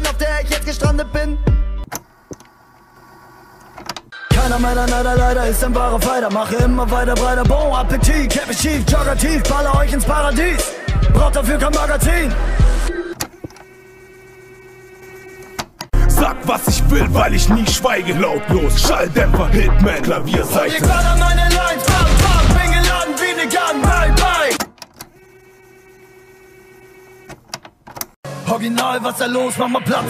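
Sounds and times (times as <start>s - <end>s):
rap beat: 0.0s - 1.8s, 4.3s - 13.2s, 15.9s - 24.6s, 28.3s - 30.0s.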